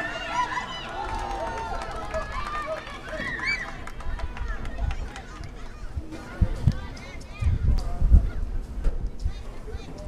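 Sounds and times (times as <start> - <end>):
people calling out: 0.0 - 6.1.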